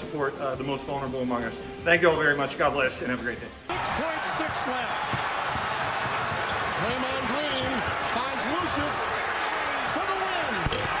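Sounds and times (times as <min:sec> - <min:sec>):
arena crowd noise: 0:03.7 - 0:11.0.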